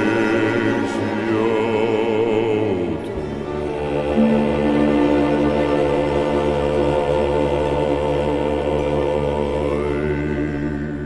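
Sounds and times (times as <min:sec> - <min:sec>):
choir holding a chord: 0:00.0 - 0:11.0.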